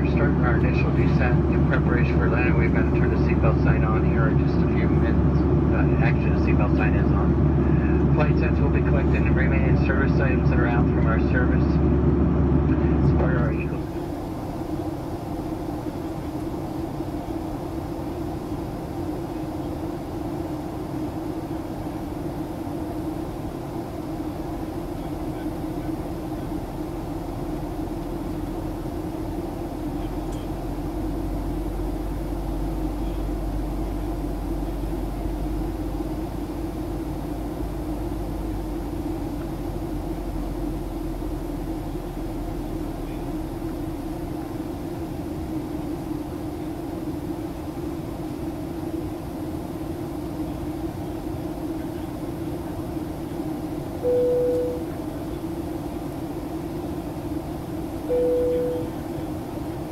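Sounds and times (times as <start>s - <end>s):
deep low hum: 0.0s - 14.3s, 24.4s - 45.2s, 54.0s - 55.0s, 58.1s - 59.1s
airliner cabin drone: 0.0s - 59.9s.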